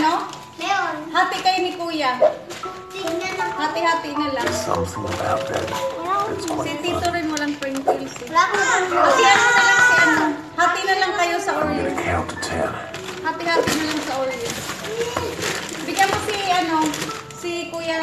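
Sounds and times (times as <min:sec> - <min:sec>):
background music: 0:00.0 - 0:18.0
children talking: 0:02.8 - 0:17.0
children shouting excitedly: 0:08.4 - 0:10.4.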